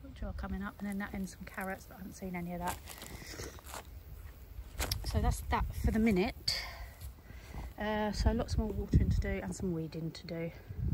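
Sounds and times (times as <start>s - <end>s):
wind rumble on microphone: 0.0s - 10.9s.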